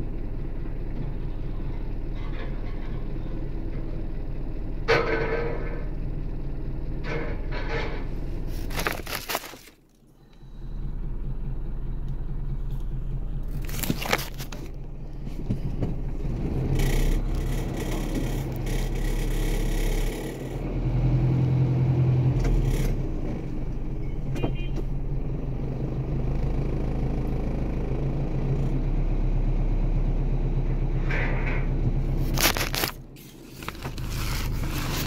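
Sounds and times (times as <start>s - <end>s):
vehicle engines rumbling: 0.0s - 35.0s
traffic passing: 10.2s - 35.0s.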